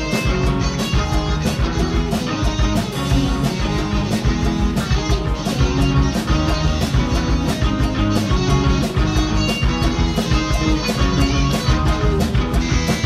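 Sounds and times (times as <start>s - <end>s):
bass guitar: 0.0s - 13.0s
drum kit with cymbal hits: 0.0s - 13.0s
electric guitars: 0.0s - 13.0s.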